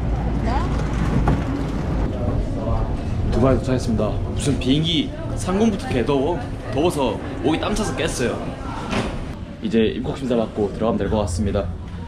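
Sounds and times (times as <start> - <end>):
airliner cabin rumble: 0.0 - 5.3
faint passengers' voices: 0.0 - 12.0.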